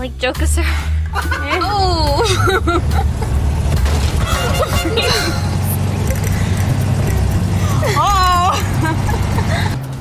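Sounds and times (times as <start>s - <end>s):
car engine rumbling: 0.0s - 10.0s.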